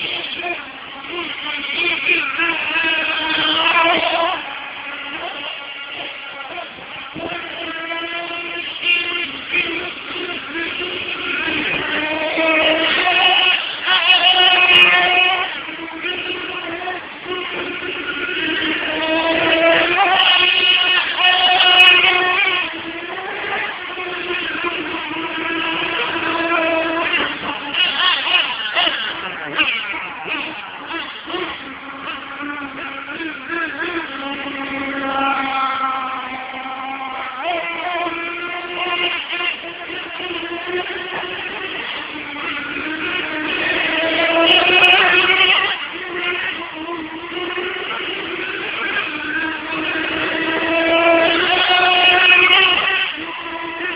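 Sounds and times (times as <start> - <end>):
rc car motors revving: 0.0 - 53.9.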